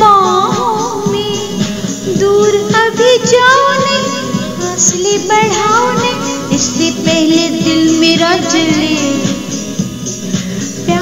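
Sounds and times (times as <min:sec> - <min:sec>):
instrumental accompaniment: 0:00.0 - 0:11.0
light vocal song: 0:00.0 - 0:11.0.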